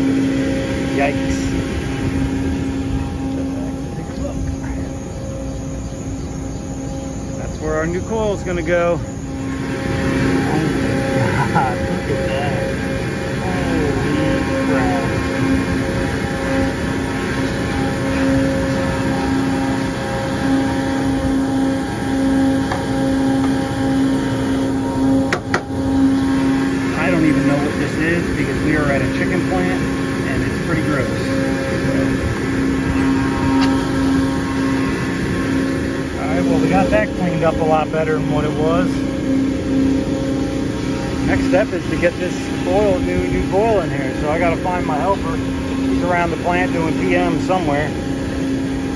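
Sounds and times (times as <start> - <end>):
machinery humming: 0.0 - 48.9.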